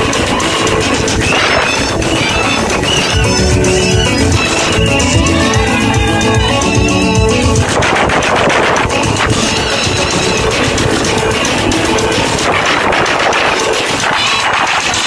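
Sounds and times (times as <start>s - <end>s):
electronic keyboard music: 0.0s - 15.0s.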